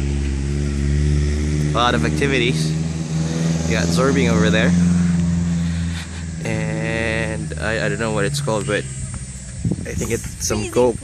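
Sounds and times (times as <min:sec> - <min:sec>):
vehicle engine low drone: 0:00.0 - 0:11.0.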